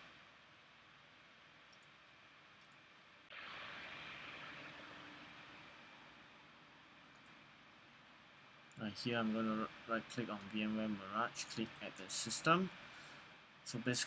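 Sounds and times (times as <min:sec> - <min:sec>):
low even hiss: 0:00.0 - 0:14.0.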